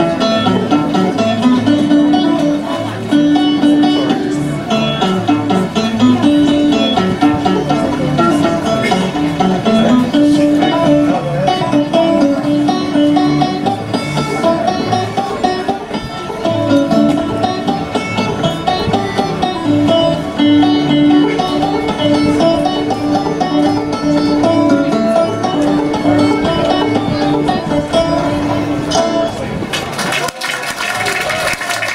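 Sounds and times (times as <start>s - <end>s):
solo banjo tune: 0.0s - 29.7s.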